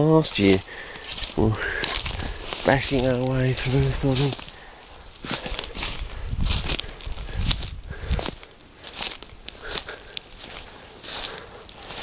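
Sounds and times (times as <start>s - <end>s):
footsteps through dry leaves: 0.0s - 12.0s
stems brushing: 0.0s - 12.0s.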